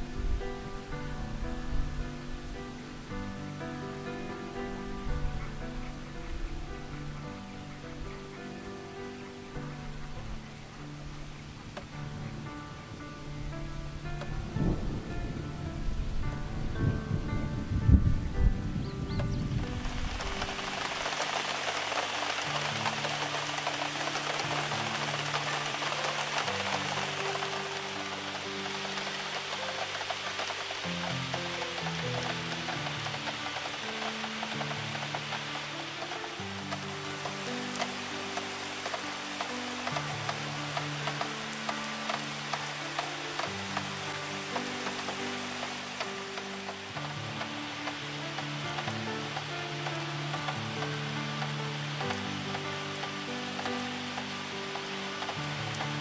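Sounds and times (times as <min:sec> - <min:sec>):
slow music of low chords: 0:00.0 - 0:56.0
steady rain falling: 0:00.0 - 0:56.0.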